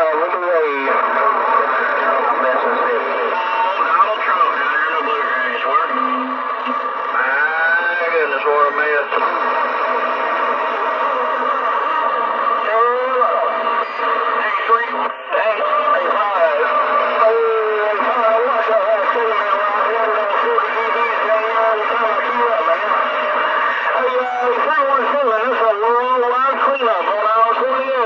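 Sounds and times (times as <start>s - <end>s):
radio static hiss: 0.0s - 28.0s
voices over radio speaker: 0.0s - 28.0s.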